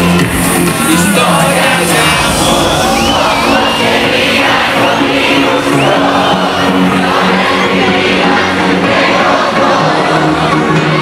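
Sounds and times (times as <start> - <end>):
crowd cheering and whooping: 0.0 - 11.0
loud synth-pop music: 0.0 - 11.0.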